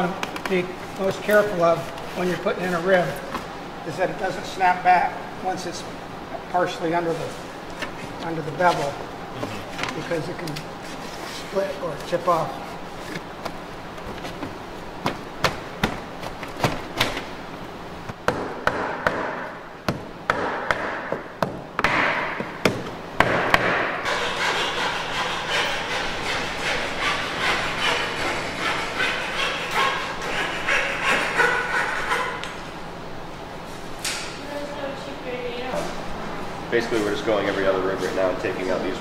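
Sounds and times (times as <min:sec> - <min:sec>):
hammer knocking on wood: 0:18.3 - 0:23.9
scraping on wood: 0:24.0 - 0:32.4.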